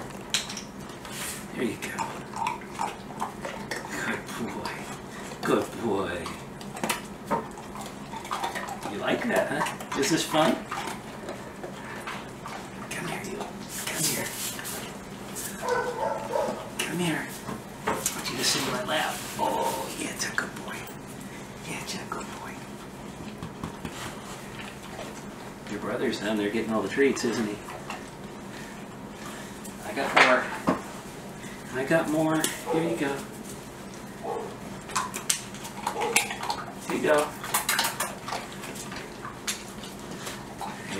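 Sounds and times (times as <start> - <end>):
dog crunching hard treat: 0.0 - 21.2, 23.2 - 25.9, 31.9 - 40.9.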